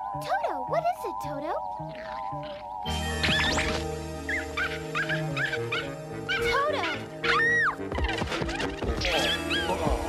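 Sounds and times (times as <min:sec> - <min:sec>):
background music: 0:00.0 - 0:10.0
cartoon dog whining: 0:04.3 - 0:09.7
cartoon dog yipping: 0:04.3 - 0:09.7.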